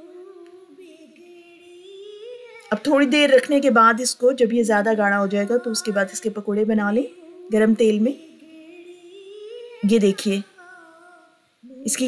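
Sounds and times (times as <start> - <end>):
person speaking: 2.5 - 8.4, 9.7 - 10.8
person humming: 7.0 - 12.0.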